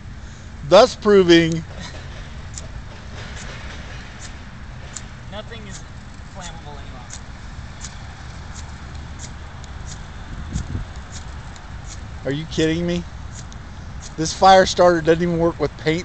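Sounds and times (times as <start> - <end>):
fire starter rod scraping: 0.8 - 15.4.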